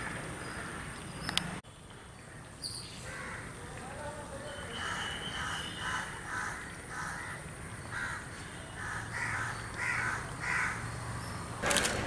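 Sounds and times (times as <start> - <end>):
crows cawing: 3.0 - 3.6, 4.8 - 10.9
loud rough noise: 11.6 - 12.0.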